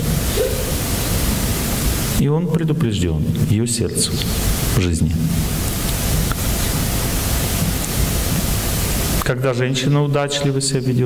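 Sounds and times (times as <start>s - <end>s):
loud steady hiss: 0.0s - 11.0s.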